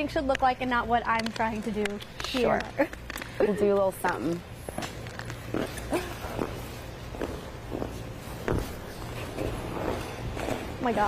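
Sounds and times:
steady low hum: 0:00.0 - 0:11.0
skate blades scraping ice: 0:04.7 - 0:11.0.

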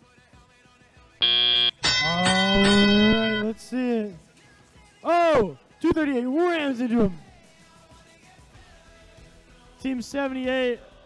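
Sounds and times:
electronic buzzer tone: 0:01.2 - 0:03.6.

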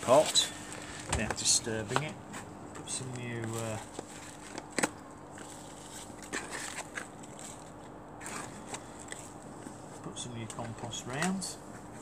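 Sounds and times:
compost and plastic pot rustling: 0:00.0 - 0:12.0.

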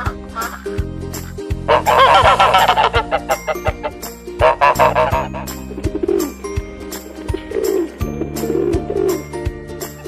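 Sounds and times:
background music with steady beat: 0:00.0 - 0:10.0
jingling percussion: 0:01.9 - 0:10.0
pigeon cooing: 0:04.6 - 0:06.4, 0:07.2 - 0:09.3.

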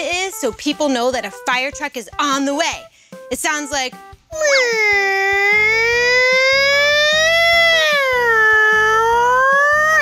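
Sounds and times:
background music with steady beat: 0:00.0 - 0:10.0
woman imitating a siren: 0:04.4 - 0:10.0.

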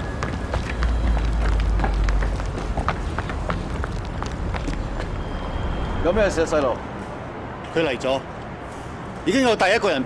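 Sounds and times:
running footsteps on hard roof: 0:00.0 - 0:05.2.

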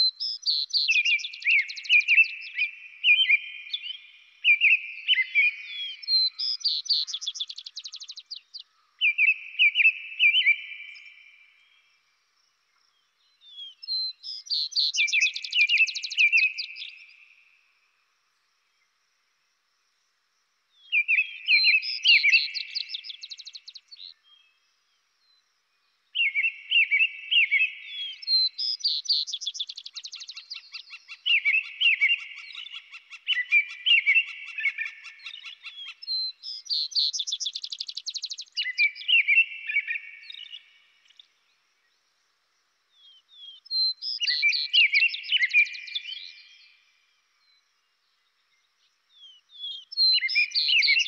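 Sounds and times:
birds singing trills: 0:00.0 - 0:11.9, 0:12.8 - 0:17.4, 0:20.8 - 0:24.6, 0:26.1 - 0:41.6, 0:42.9 - 0:47.6, 0:48.2 - 0:51.0.

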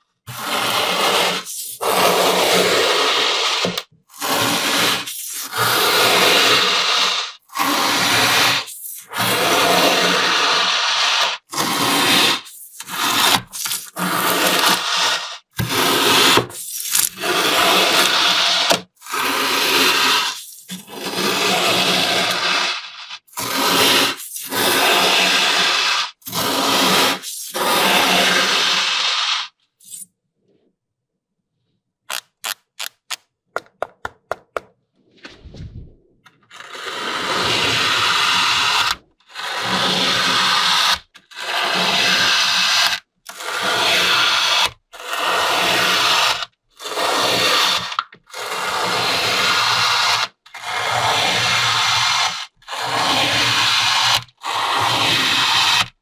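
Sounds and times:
comb tool scraping sand: 0:00.3 - 0:30.0, 0:36.5 - 0:48.0, 0:48.6 - 0:56.0.

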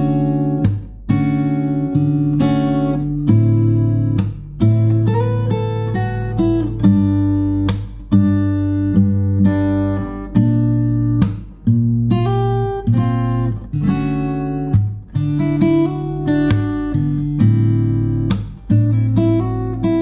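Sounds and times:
fingerstyle acoustic guitar: 0:00.0 - 0:20.0.

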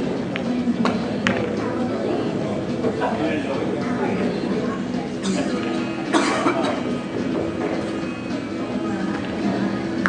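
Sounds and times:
murmur of voices: 0:00.0 - 0:10.0
person coughing: 0:05.2 - 0:06.8.

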